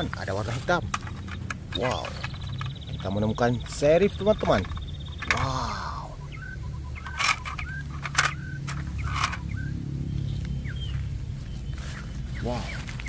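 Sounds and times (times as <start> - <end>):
handling clicks: 0.0 - 5.5, 7.0 - 9.7
low rumble: 0.0 - 13.0
high bird chirps: 1.2 - 13.0.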